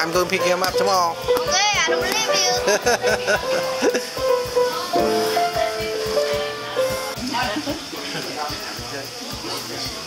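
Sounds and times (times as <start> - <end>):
background music with steady beat: 0.0 - 7.9
people talking indistinctly: 0.0 - 10.0.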